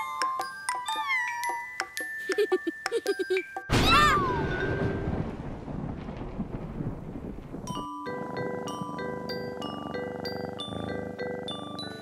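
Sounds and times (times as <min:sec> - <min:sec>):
chiming bell-like tune: 0:00.0 - 0:03.7
thunder rumbling: 0:03.7 - 0:11.2.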